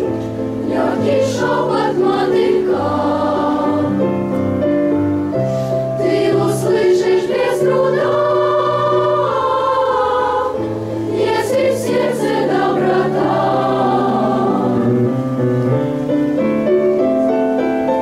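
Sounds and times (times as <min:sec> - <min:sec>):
children's choir singing: 0:00.0 - 0:04.2, 0:06.0 - 0:15.1
held accompaniment chords: 0:00.0 - 0:18.0.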